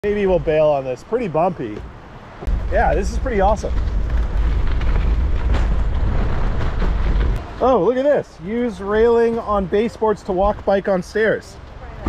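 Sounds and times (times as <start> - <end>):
tyres on gravel: 0.0 - 12.0
wind buffeting microphone: 1.8 - 7.6.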